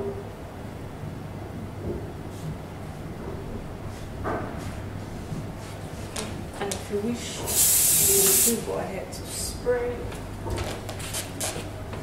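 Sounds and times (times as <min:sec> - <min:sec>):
aerosol hair spray hissing: 0:07.5 - 0:08.6.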